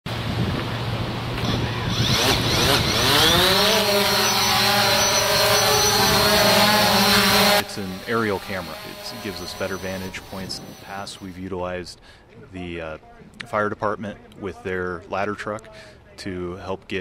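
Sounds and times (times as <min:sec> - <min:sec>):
drone rotors whining: 0:01.4 - 0:11.4.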